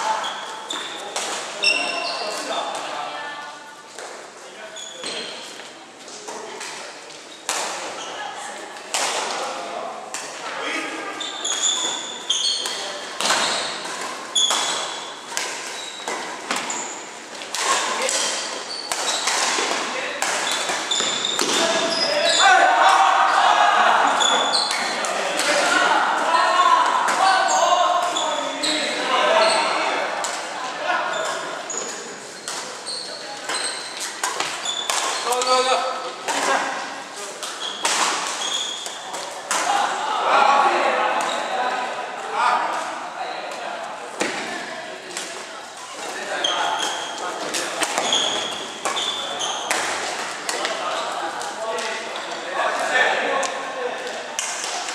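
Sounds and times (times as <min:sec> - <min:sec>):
people talking and calling out: 0:00.0 - 0:54.9
shoes squeaking on court: 0:00.1 - 0:02.8, 0:04.7 - 0:05.8, 0:11.1 - 0:22.5, 0:24.1 - 0:25.0, 0:27.4 - 0:29.9, 0:31.1 - 0:36.2, 0:37.5 - 0:39.4, 0:45.7 - 0:51.2
rackets hitting shuttlecock: 0:11.5 - 0:22.0, 0:33.4 - 0:35.6, 0:37.4 - 0:39.8, 0:46.8 - 0:50.8.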